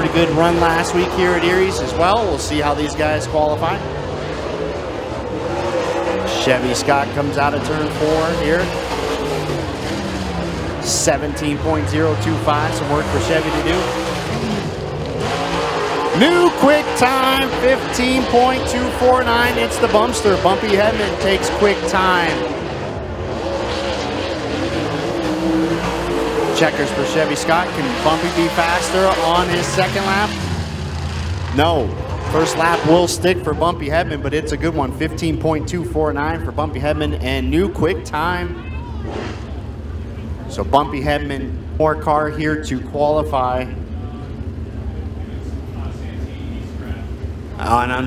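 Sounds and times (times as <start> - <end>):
race car engine running: 0.0 - 48.0.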